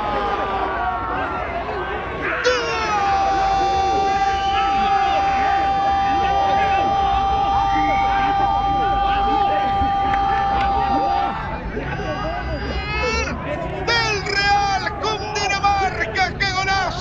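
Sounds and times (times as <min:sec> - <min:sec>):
crowd shouting in celebration: 0:00.0 - 0:17.0
commentator shouting goal: 0:02.3 - 0:17.0.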